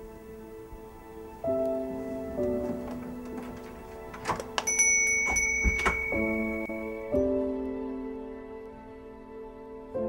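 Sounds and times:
soft background music: 0:00.0 - 0:10.0
high steady ringing note: 0:04.6 - 0:07.2
door being shut with a thud: 0:05.3 - 0:06.6.

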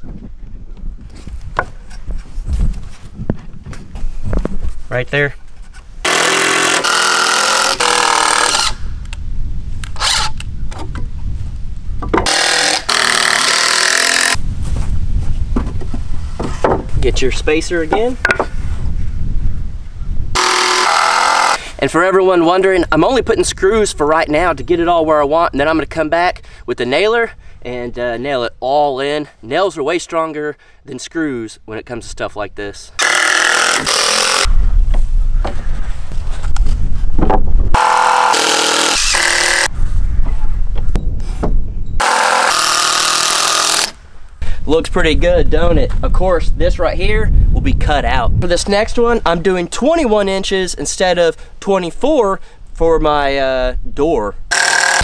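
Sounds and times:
wind buffeting microphone: 0:00.0 - 0:06.1, 0:07.9 - 0:12.4, 0:14.4 - 0:20.4, 0:21.9 - 0:27.7, 0:34.4 - 0:37.8, 0:39.0 - 0:42.0, 0:44.4 - 0:51.2
cordless drill driving screws into wood: 0:06.0 - 0:08.8, 0:09.8 - 0:10.4, 0:12.2 - 0:14.4, 0:20.4 - 0:21.7, 0:33.0 - 0:34.5, 0:37.8 - 0:39.7, 0:42.0 - 0:44.0, 0:54.5 - 0:55.0.

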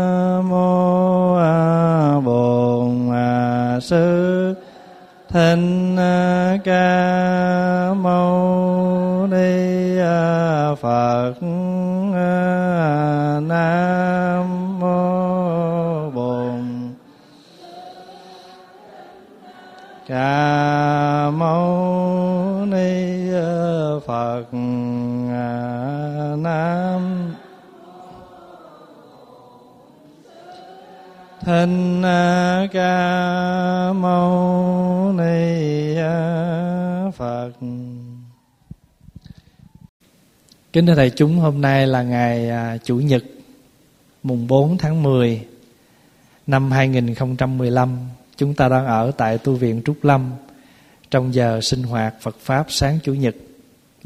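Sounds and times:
man chanting: 0:00.0 - 0:29.4, 0:30.8 - 0:38.4, 0:40.7 - 0:43.4, 0:44.2 - 0:45.6, 0:46.5 - 0:50.5, 0:51.1 - 0:53.5.

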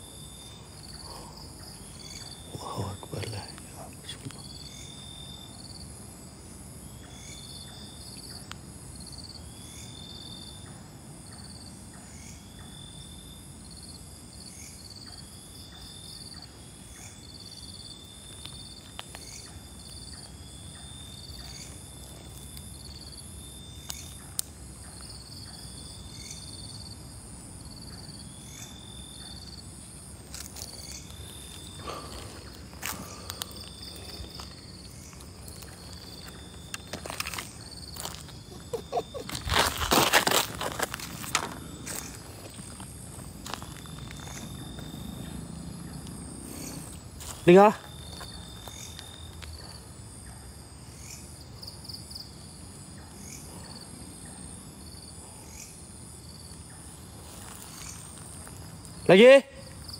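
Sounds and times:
night insects chirping: 0:00.0 - 0:59.9
footsteps in leaf litter: 0:36.9 - 0:42.7.

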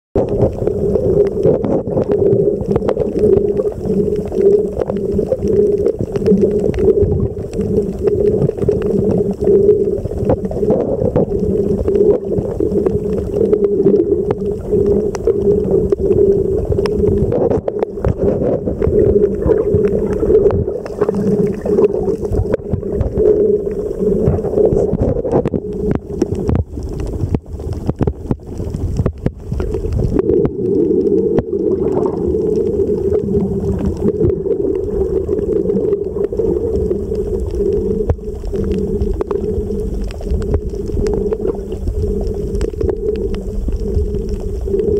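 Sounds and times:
crackling clicks: 0:00.2 - 0:44.9
muffled underwater drone: 0:00.2 - 0:44.9.

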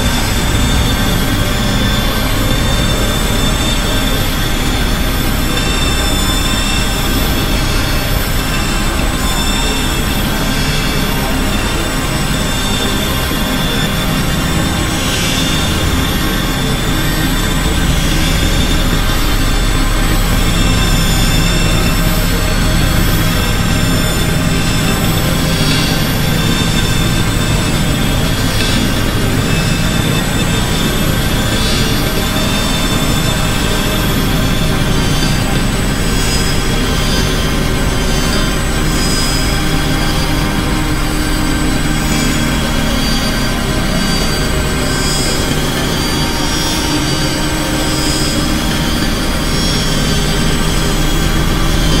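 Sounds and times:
experimental electronic noise music: 0:00.0 - 0:52.0.

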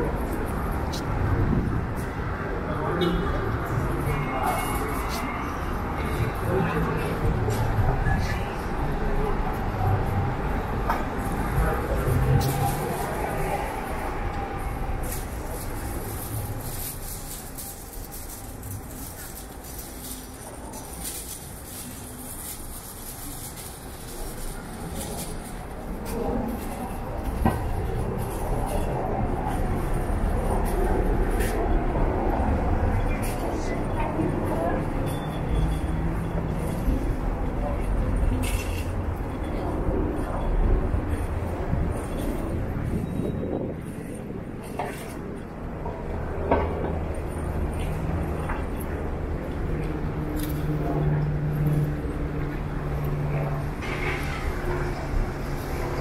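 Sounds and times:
indistinct voices of passers-by: 0:00.0 - 0:56.0
traffic rumble: 0:00.0 - 0:56.0.

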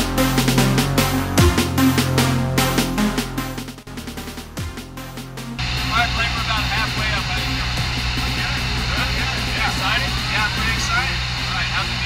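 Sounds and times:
electronic music with a beat: 0:00.0 - 0:12.0
indistinct voices: 0:05.6 - 0:12.0
small plane engine drone: 0:05.6 - 0:12.0.

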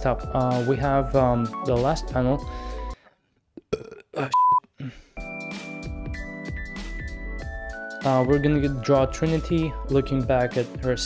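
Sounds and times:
background music with steady beat: 0:00.0 - 0:03.0, 0:05.2 - 0:11.0.

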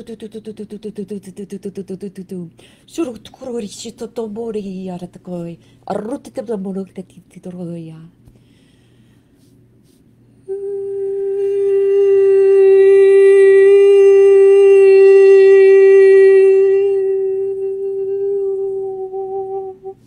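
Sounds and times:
woman humming long note: 0:10.4 - 0:20.0.

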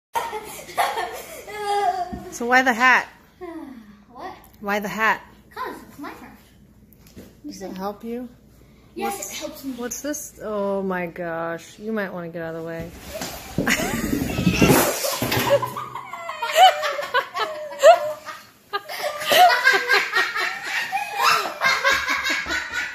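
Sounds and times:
high-pitched laughter: 0:13.7 - 0:22.9.

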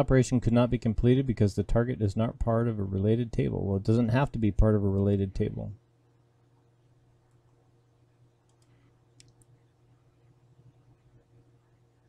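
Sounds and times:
low steady hum: 0:00.0 - 0:12.0
computer mouse clicks: 0:08.4 - 0:09.6.

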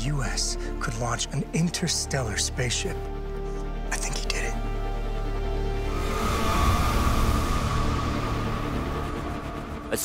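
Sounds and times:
ominous held music tone: 0:04.6 - 0:10.0
deep rumble: 0:04.8 - 0:10.0.

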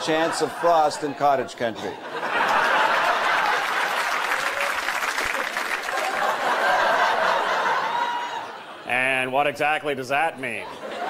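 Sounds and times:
audience applauding: 0:02.4 - 0:08.6.

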